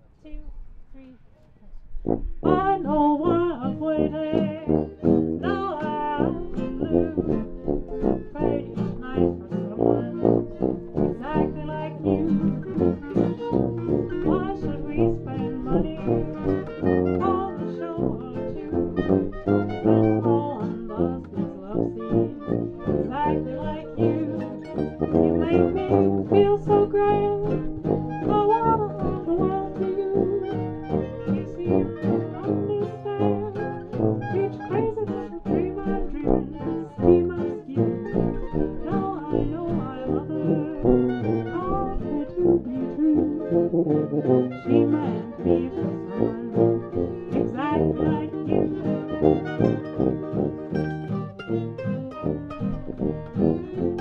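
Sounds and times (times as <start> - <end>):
acoustic swing band: 2.0 - 54.0.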